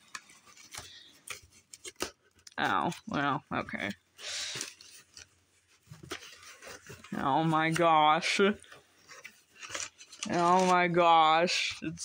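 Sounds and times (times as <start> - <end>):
soft rustle: 3.9 - 12.0.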